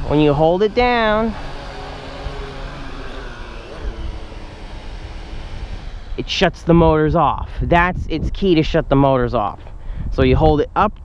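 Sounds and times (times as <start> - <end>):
drone propellers whirring: 0.0 - 8.6
wind rumble on microphone: 0.0 - 11.0.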